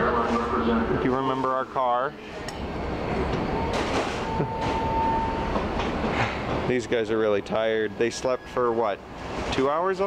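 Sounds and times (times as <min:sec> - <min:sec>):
steady high whine: 0:00.0 - 0:08.1
rumble of vehicles: 0:00.0 - 0:10.0.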